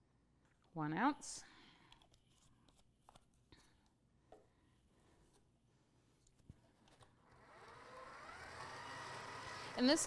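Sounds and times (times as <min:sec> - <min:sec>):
stand mixer motor whirring: 0:07.3 - 0:10.0.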